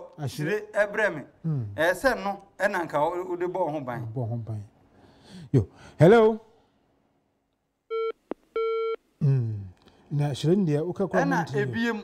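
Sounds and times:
telephone busy tone beeps: 0:07.9 - 0:09.0.

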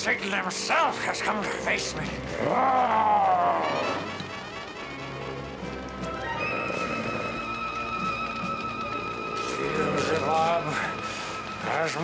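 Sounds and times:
dramatic orchestral score: 0:00.0 - 0:12.0
monster roar: 0:02.1 - 0:04.3.

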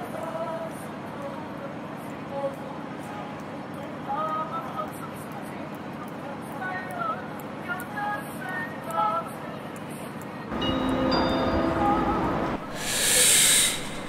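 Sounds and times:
train rumble and rushing hiss: 0:10.6 - 0:14.0
short chirps: 0:12.7 - 0:14.0.

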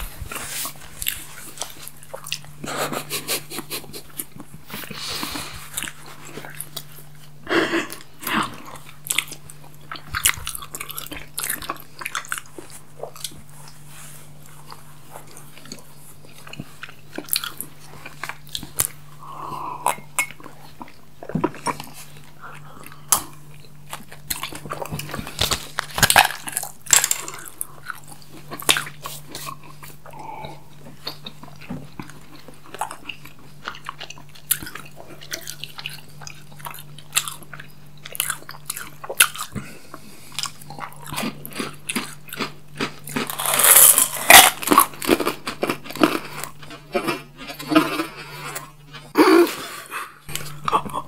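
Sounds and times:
rustling: 0:00.0 - 0:02.0
wet chewing: 0:00.0 - 0:19.0, 0:19.9 - 0:49.2
crunching sweets: 0:00.0 - 0:51.0
faint low hum: 0:00.0 - 0:51.0.

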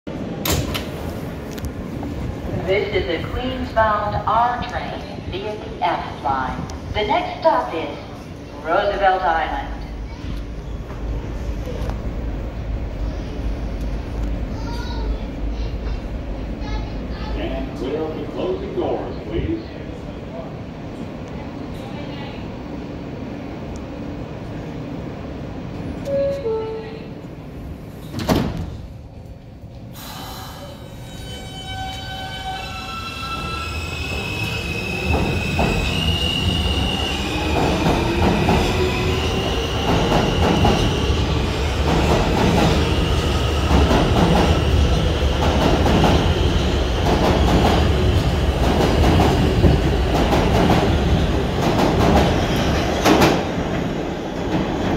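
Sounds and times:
train cars rumbling: 0:00.1 - 0:54.9
train doors closing thump: 0:00.4 - 0:01.0, 0:28.0 - 0:28.8.

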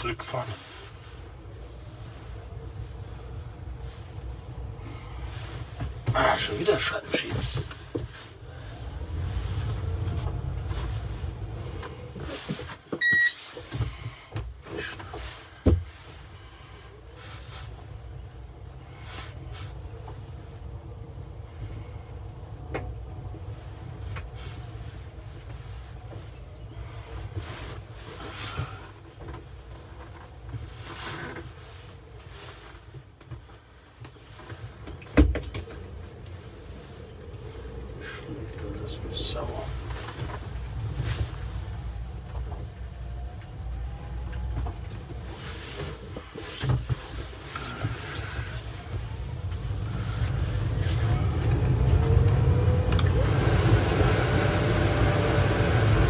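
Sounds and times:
car cabin low rumble: 0:00.0 - 0:56.0
short beep: 0:13.0 - 0:13.4.

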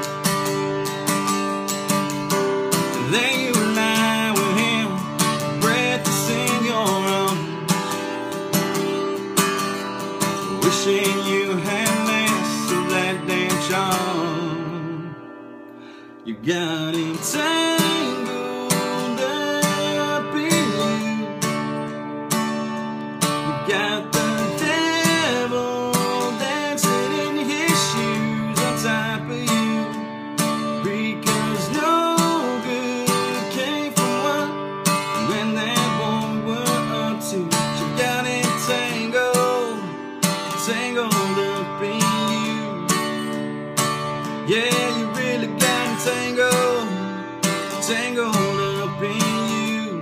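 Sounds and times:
acoustic guitar strummed: 0:00.0 - 0:50.0.

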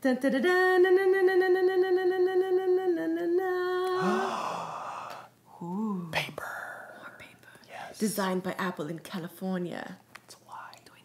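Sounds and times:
person singing a long held note: 0:03.5 - 0:04.8.

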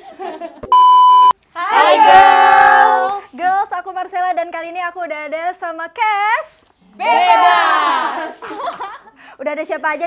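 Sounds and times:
electronic bleep tone: 0:00.7 - 0:01.4
voices breaking out loudly: 0:07.0 - 0:08.5.

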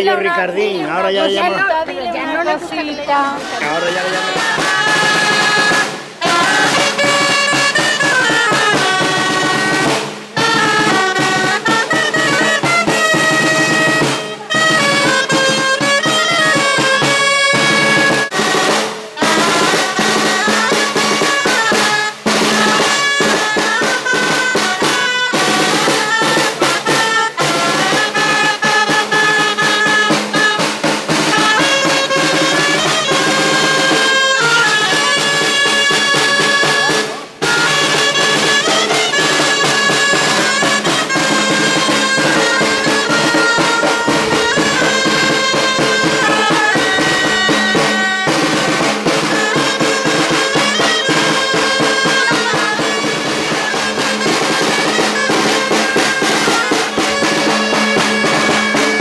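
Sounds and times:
snare drum: 0:03.3 - 0:59.0
clarinets playing a melody: 0:03.4 - 0:59.0.

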